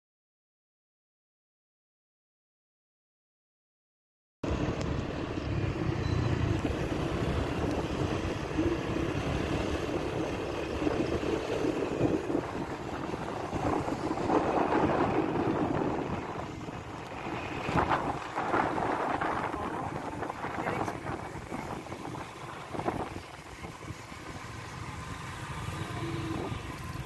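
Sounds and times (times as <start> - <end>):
scooter engines running: 4.5 - 27.0
wind buffeting microphone: 6.5 - 27.0.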